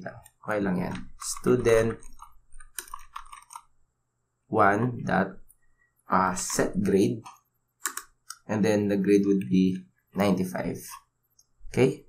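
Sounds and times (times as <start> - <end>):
computer keyboard keys clicking: 0.9 - 3.7, 7.8 - 8.4.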